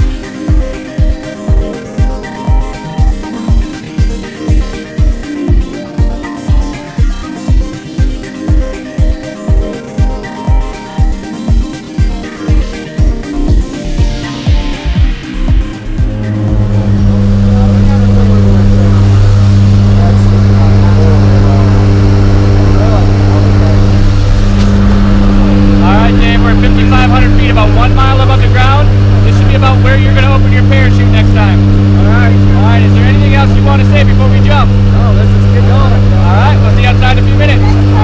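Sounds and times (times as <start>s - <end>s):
airplane engines droning: 15.6s - 38.0s
faint voices: 16.5s - 38.0s.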